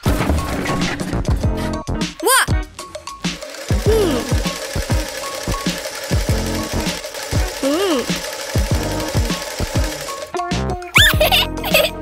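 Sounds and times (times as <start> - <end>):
background music: 0.0 - 12.0
hummed voice sounds: 2.2 - 2.6, 3.8 - 4.4, 7.6 - 8.1
cartoon sewing machine stitching: 3.2 - 12.0.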